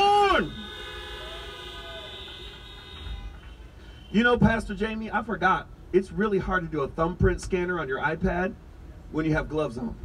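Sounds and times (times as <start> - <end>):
car horns honking: 0.0 - 4.7.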